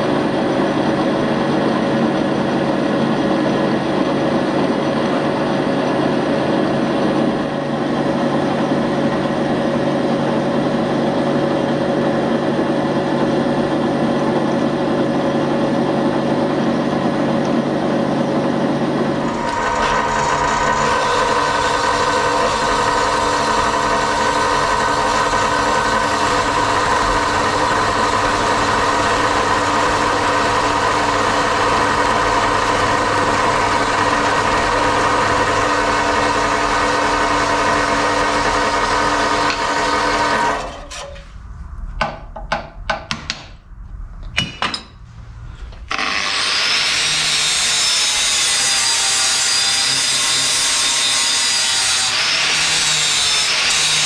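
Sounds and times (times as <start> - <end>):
bandsaw cutting steel: 18.8 - 41.2, 45.9 - 54.0
angle grinder grinding steel: 19.2 - 41.1, 45.9 - 54.0
metal knocks and clanks: 44.2 - 45.0.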